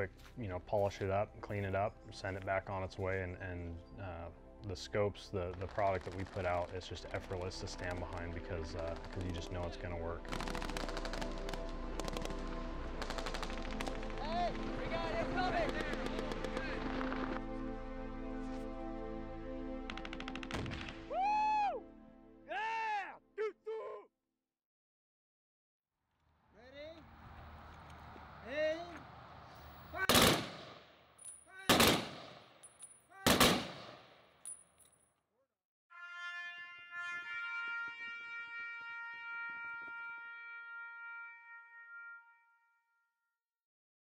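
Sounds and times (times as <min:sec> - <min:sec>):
rifle gunfire in rapid bursts: 0:10.3 - 0:12.2, 0:30.1 - 0:30.8, 0:31.7 - 0:32.5, 0:33.2 - 0:34.1
person shouting: 0:22.5 - 0:24.1, 0:31.5 - 0:31.8.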